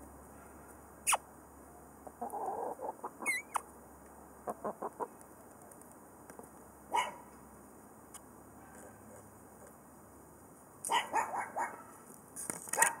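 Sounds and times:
animal calls: 2.2 - 3.6.

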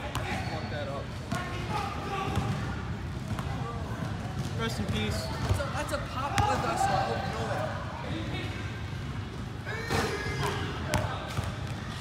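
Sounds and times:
basketballs bouncing on court: 0.0 - 0.5, 1.2 - 7.4, 9.8 - 12.0.

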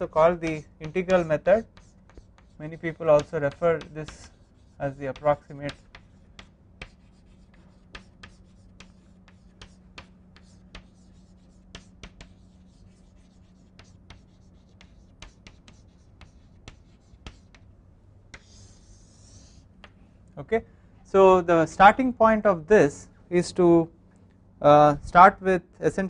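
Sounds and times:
chalk writing on blackboard: 0.0 - 17.7, 18.3 - 19.7
faint low hum: 0.0 - 26.0.

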